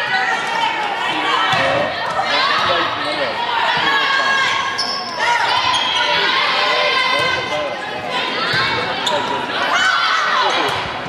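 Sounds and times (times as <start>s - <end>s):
voices calling and cheering: 0.0s - 11.0s.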